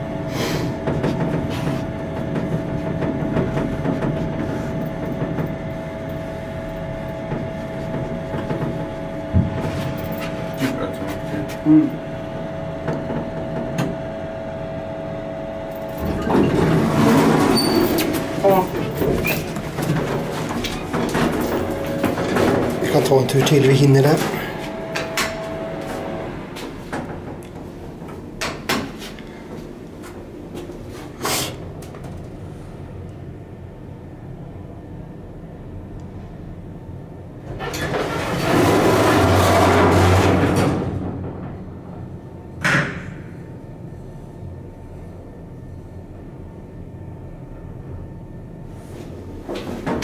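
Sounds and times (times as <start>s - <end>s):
low hum: 0.0s - 28.4s
elevator mechanical noise: 0.0s - 50.0s
sliding doors opening: 15.9s - 28.2s, 37.5s - 41.6s.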